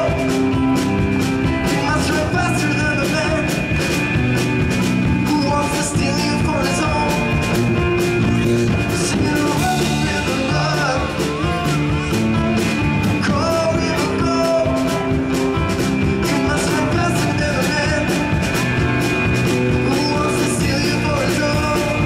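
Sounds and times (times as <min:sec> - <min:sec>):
drum kit: 0:00.0 - 0:22.0
guitars: 0:00.0 - 0:22.0.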